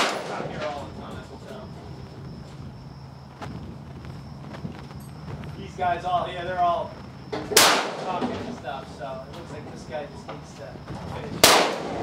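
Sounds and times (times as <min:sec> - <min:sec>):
rifle shot with echo: 0:00.0 - 0:00.6, 0:07.5 - 0:08.4, 0:11.4 - 0:12.0.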